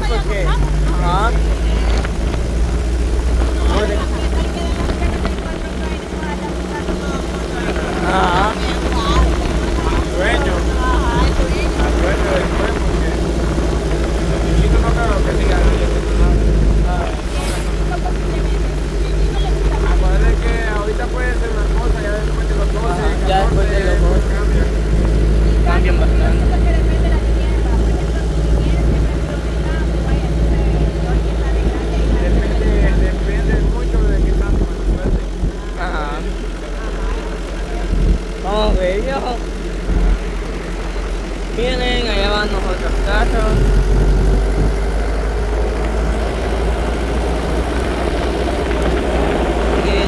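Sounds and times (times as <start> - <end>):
road rumble: 0.0 - 50.0
truck engine drone: 0.0 - 50.0
voices talking: 0.0 - 50.0.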